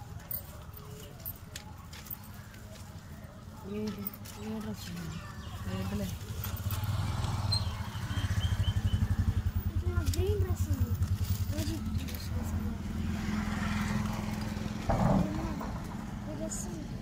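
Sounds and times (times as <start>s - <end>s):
faint voices talking: 0.0s - 17.0s
vehicle engine running: 4.4s - 17.0s.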